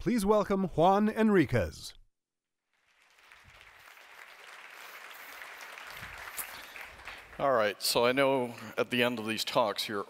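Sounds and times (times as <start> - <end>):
audience applauding: 2.7 - 10.0.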